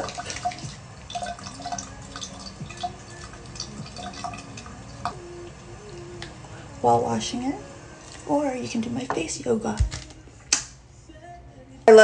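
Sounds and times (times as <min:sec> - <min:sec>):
wet squelches of face washing: 0:00.0 - 0:04.4.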